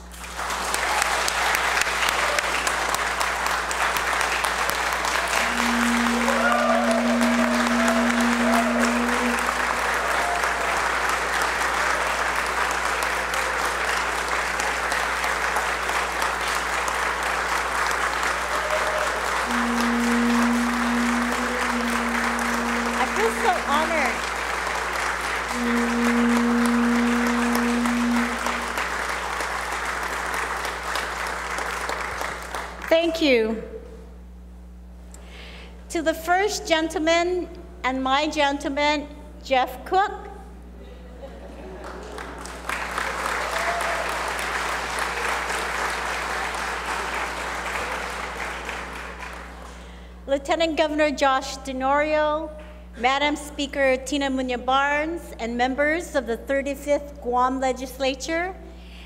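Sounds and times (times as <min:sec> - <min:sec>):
audience applause: 0:00.0 - 0:32.9, 0:41.6 - 0:50.0
people whooping: 0:05.1 - 0:11.0, 0:18.4 - 0:24.2, 0:43.0 - 0:45.4
long held tones: 0:05.2 - 0:10.8, 0:18.8 - 0:24.5, 0:25.4 - 0:29.0.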